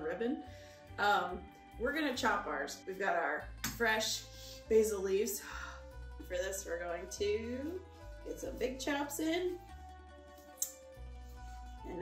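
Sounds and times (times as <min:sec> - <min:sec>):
background music with low bass: 0:00.0 - 0:12.0.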